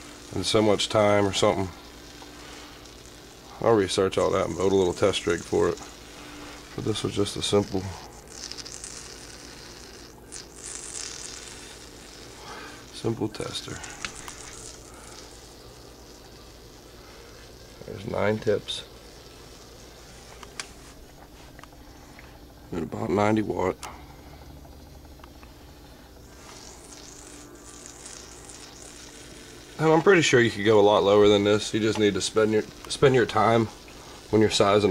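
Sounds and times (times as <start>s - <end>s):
water sizzling on hot metal: 0.0s - 21.9s, 26.1s - 34.9s
low steady hum: 0.0s - 34.9s.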